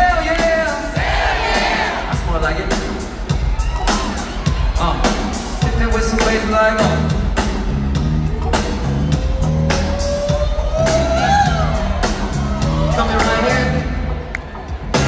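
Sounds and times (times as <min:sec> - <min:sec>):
drum beat: 0:00.0 - 0:15.0
bass line: 0:02.1 - 0:15.0
crowd whooping: 0:03.3 - 0:05.7, 0:08.3 - 0:15.0.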